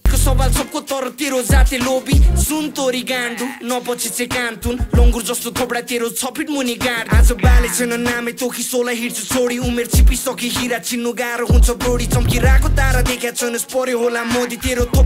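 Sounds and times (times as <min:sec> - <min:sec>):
rapping over a synth line: 0:00.0 - 0:15.0
deep bass hits: 0:02.2 - 0:02.5, 0:11.5 - 0:13.1.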